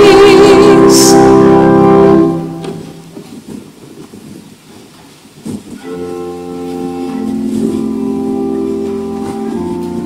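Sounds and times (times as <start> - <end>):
held organ chords: 0.0 - 3.2, 5.8 - 10.0.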